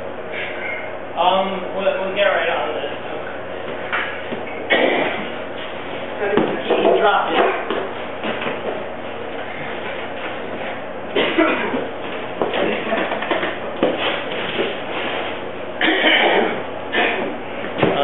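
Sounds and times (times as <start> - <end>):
knocks and bumps of people moving: 3.6 - 18.0.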